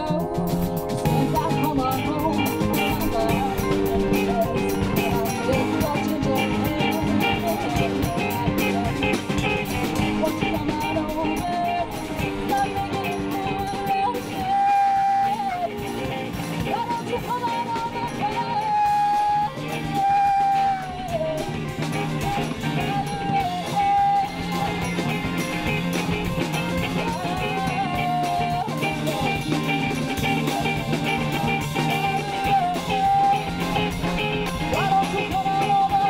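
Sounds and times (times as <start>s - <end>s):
live band playing: 0.0s - 36.0s.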